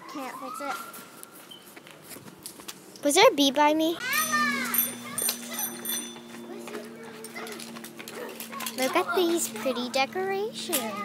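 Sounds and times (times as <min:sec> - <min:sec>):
steady low hum: 0:02.7 - 0:11.0.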